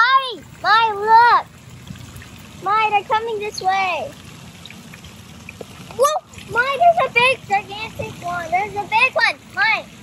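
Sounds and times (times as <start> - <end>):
low steady rumble: 0.0 - 10.0
pond water trickling: 0.0 - 10.0
soft water ticks: 0.0 - 10.0.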